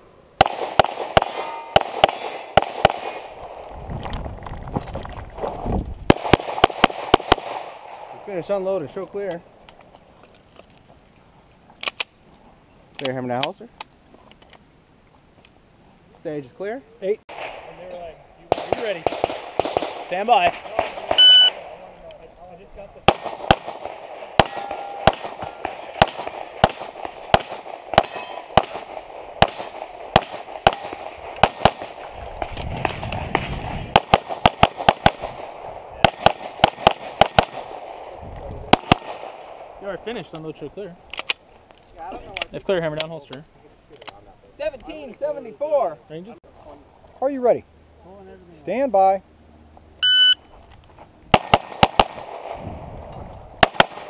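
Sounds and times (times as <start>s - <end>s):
rapid pistol fire: 0.4s - 3.4s, 6.1s - 8.1s, 18.5s - 21.2s, 23.1s - 32.0s, 32.9s - 38.0s, 38.7s - 39.4s, 51.3s - 52.7s, 53.6s - 54.0s.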